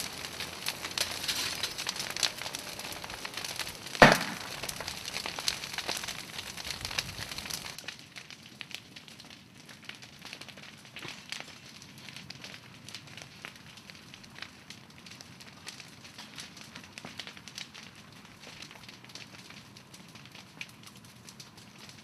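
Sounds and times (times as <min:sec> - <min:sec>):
fire crackling and popping: 0:00.0 - 0:22.0
loud sharp pop: 0:04.0 - 0:04.5.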